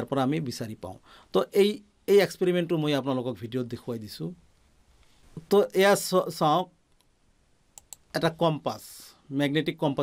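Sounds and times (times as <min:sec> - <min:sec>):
man speaking: 0:00.0 - 0:04.4, 0:05.4 - 0:06.8, 0:08.1 - 0:10.0
sharp clicks: 0:07.8 - 0:08.1.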